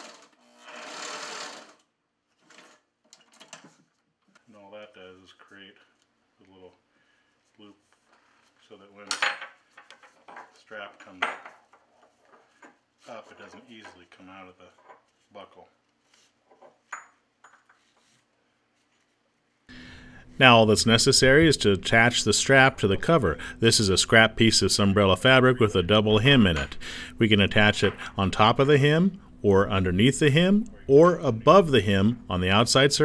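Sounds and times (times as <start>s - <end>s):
sewing machine stitching: 0.0s - 2.9s.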